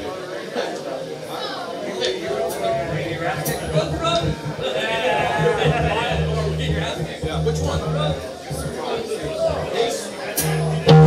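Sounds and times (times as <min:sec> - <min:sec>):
people's voices: 0:02.0 - 0:11.0.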